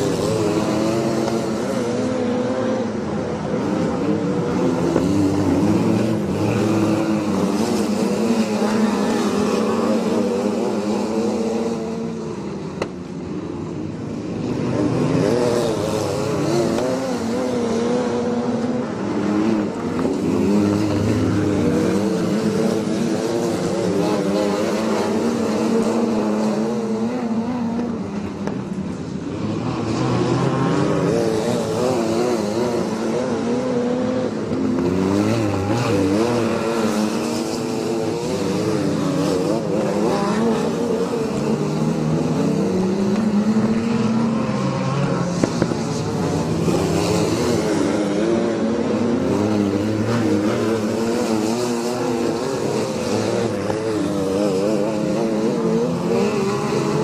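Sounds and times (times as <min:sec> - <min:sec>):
racing car engines revving: 0:00.0 - 0:57.0.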